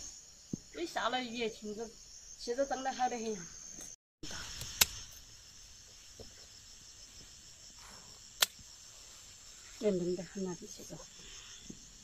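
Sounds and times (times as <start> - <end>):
insects chirring: 0.0 - 12.0
sharp click: 4.6 - 5.0, 8.4 - 8.6.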